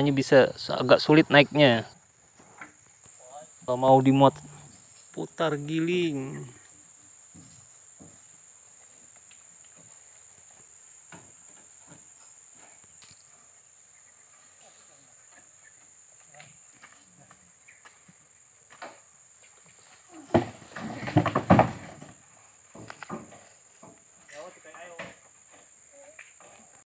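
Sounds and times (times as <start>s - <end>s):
voices: 0.0s - 2.0s, 2.6s - 6.8s, 24.2s - 26.8s
crickets chirring: 0.0s - 26.9s
knocking and clatter on wood: 20.2s - 24.0s.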